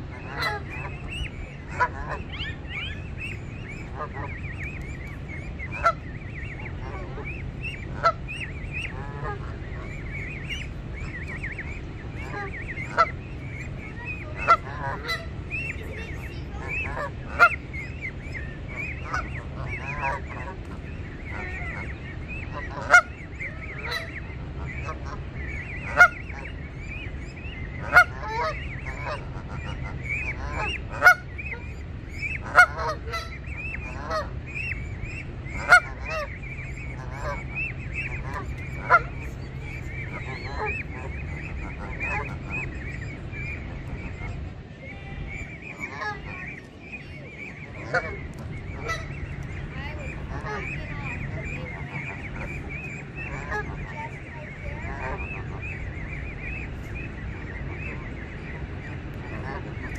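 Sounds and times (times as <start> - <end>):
geese honking: 0.0 - 59.9
goslings peeping: 0.0 - 59.9.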